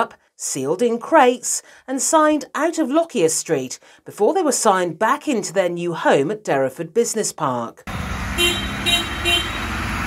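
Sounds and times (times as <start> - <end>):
horn toots: 7.9 - 10.0
van driving past: 7.9 - 10.0.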